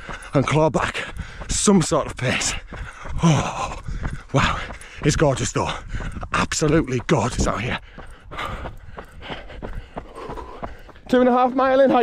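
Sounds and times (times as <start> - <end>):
man breathing heavily: 0.0 - 1.6, 2.4 - 6.4, 7.6 - 11.1
footfalls on tarmac: 0.0 - 12.0.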